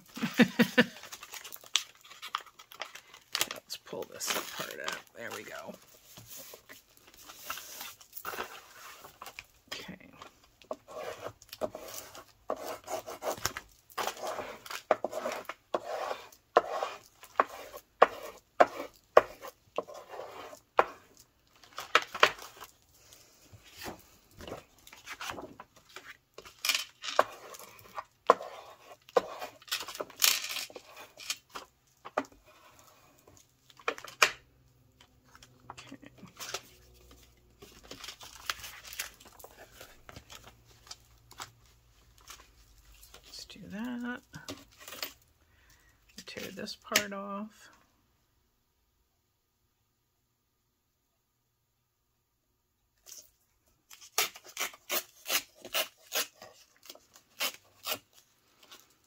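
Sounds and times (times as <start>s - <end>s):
paper rustling: 0.1s - 9.5s, 21.6s - 34.2s, 35.2s - 43.4s.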